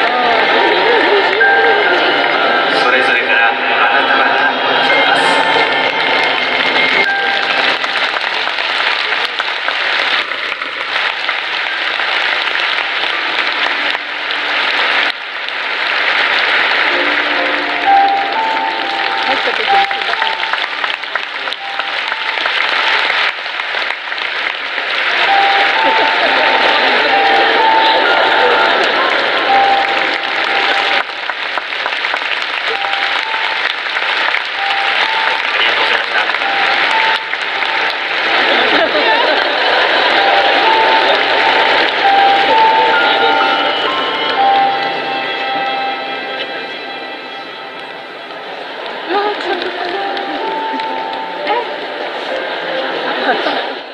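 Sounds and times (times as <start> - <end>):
faint music: 0.0 - 53.9
stadium crowd applauding: 0.0 - 53.9.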